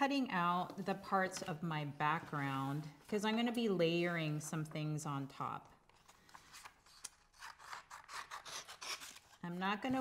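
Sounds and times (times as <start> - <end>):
scissors snipping paper: 6.6 - 9.4.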